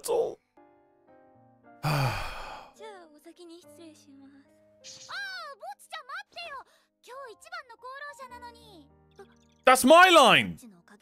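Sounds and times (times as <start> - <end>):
soft sustained background music: 0.0 - 11.0
man sighing: 1.8 - 2.8
girl speaking: 5.1 - 9.4.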